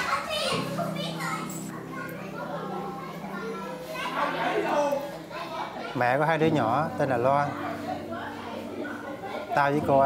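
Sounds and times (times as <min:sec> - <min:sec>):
children chattering: 0:00.0 - 0:10.0.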